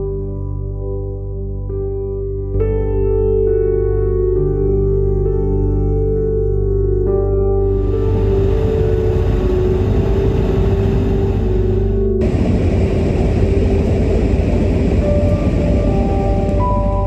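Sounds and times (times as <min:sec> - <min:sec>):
soft background music: 0:00.0 - 0:17.0
car road and engine rumble: 0:07.7 - 0:17.0
hissy road noise inside cabin: 0:07.7 - 0:17.0.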